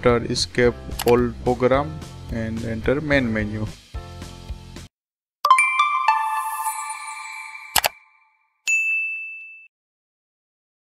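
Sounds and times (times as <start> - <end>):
bright notification bell ding: 5.5 - 9.7
chime: 5.5 - 9.7.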